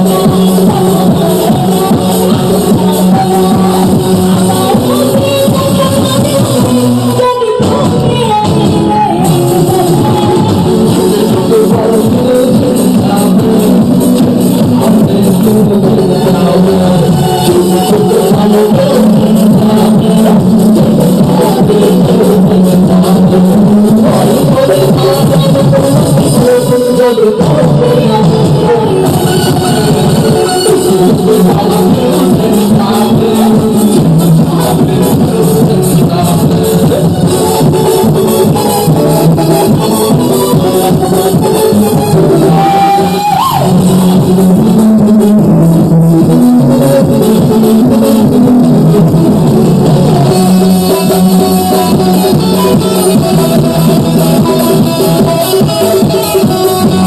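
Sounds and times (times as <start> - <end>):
live band music: 0.0 - 57.0
drum beat: 7.6 - 57.0.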